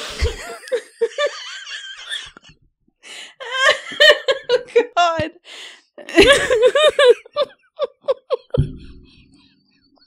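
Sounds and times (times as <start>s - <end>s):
women laughing: 0.0s - 2.5s, 3.4s - 5.3s, 6.1s - 8.6s.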